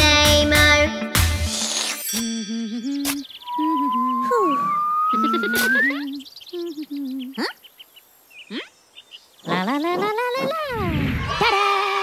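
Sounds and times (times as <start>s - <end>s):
low wordless cartoon voice: 2.5s - 5.3s, 5.9s - 7.6s
falling cartoon whistle: 3.4s - 6.1s
rising cartoon whistle: 3.4s - 6.2s
quick rising zips: 3.5s - 6.0s.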